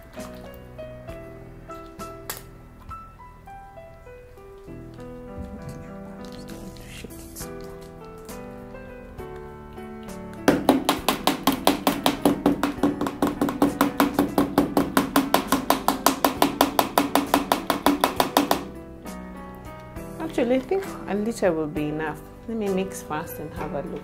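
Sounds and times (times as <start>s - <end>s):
instrumental music: 0.0s - 24.0s.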